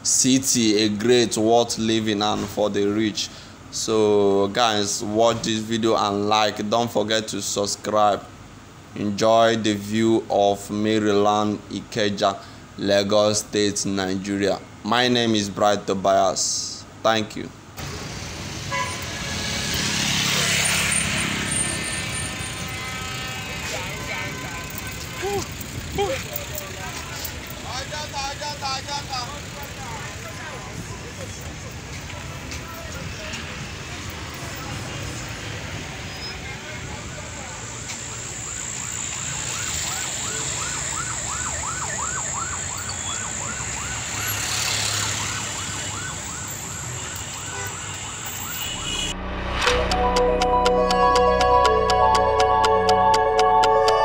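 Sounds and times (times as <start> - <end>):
slow road traffic rumble: 0.0 - 54.0
vehicle engines running: 17.6 - 54.0
vehicle passing close: 17.8 - 38.4, 42.4 - 53.3
people's voices: 23.3 - 35.4
electronic siren yelping: 38.0 - 49.2.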